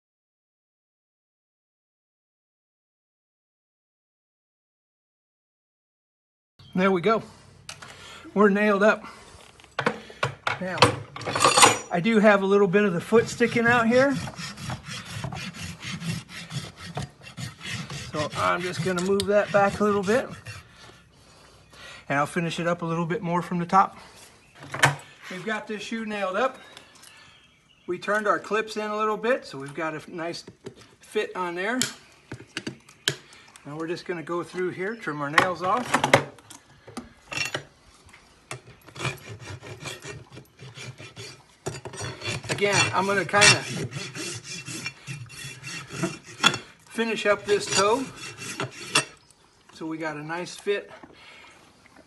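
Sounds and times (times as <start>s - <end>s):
rasp filing hoof: 12.4s - 21.1s, 38.5s - 49.2s.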